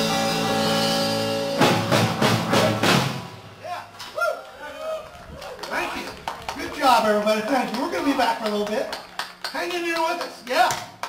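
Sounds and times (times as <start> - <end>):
hand clapping: 5.5 - 11.0.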